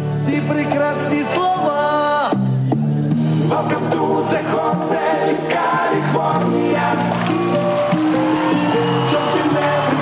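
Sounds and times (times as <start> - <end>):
music: 0.0 - 10.0
men singing together: 3.5 - 10.0.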